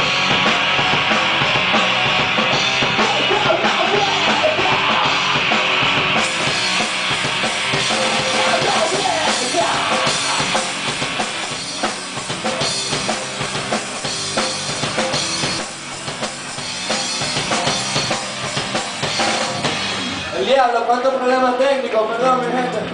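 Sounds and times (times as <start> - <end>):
live rock band playing: 0.0 - 22.9.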